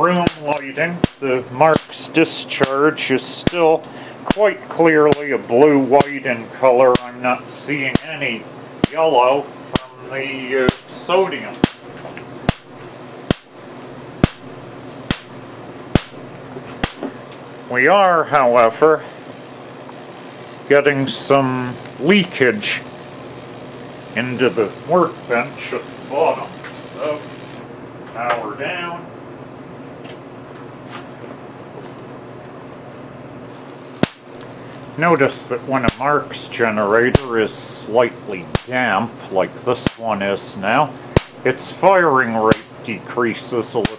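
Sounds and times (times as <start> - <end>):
electric spark cracks: 0.0 - 27.7, 33.5 - 40.2, 41.1 - 42.8, 43.5 - 43.9
room tone hum and hiss: 0.0 - 43.9.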